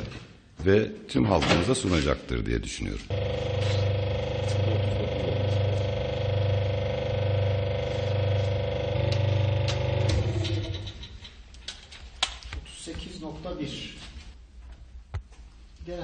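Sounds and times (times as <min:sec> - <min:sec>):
deep pulse: 0:03.1 - 0:10.7
hydraulic machine humming: 0:03.1 - 0:11.0.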